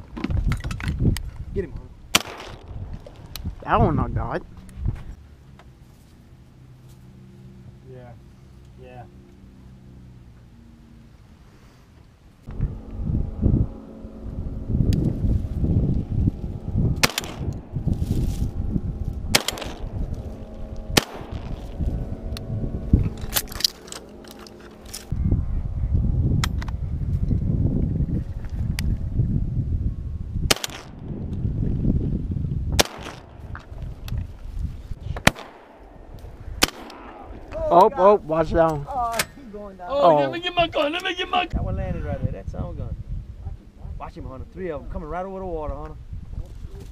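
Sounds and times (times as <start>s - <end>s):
sharp knocks and cracks: 2.2s - 3.5s, 17.0s - 17.6s, 30.5s - 31.0s, 32.8s - 33.7s
boat motor droning: 12.5s - 17.0s, 18.5s - 25.1s.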